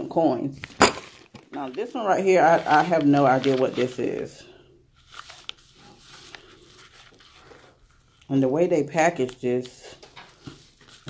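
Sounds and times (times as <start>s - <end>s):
paper package crinkling and tearing: 0.6s - 8.3s, 9.2s - 11.0s.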